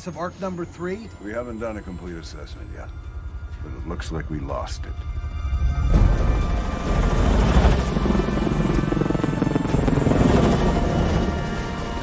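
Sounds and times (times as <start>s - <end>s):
film score music: 0.0s - 12.0s
helicopter rotors beating: 2.1s - 12.0s.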